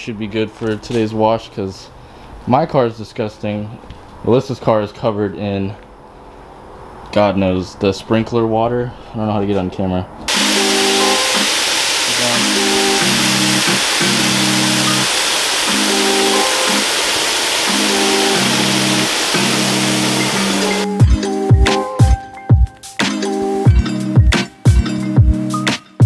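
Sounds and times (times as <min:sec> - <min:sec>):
hose spraying into plastic bucket: 0:10.3 - 0:20.9
background music: 0:10.3 - 0:26.0.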